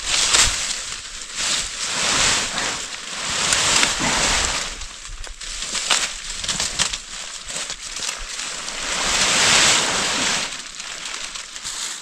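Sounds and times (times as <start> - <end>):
branches snapping: 0.0 - 12.0
bush branches rustling: 0.0 - 12.0.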